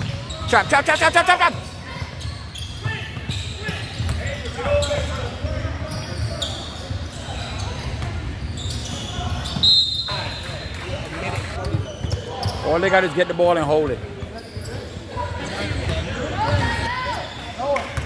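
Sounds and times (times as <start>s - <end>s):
people shouting in a gym: 0.0s - 7.9s, 14.7s - 17.8s.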